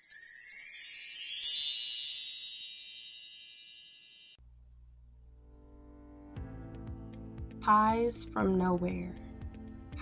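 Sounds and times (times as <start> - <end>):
high shimmering chime: 0.0 - 4.4.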